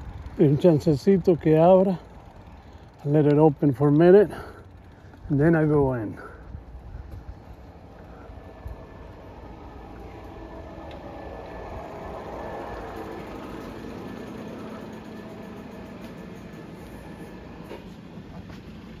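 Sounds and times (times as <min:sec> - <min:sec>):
garage door opener running: 0:07.2 - 0:19.0.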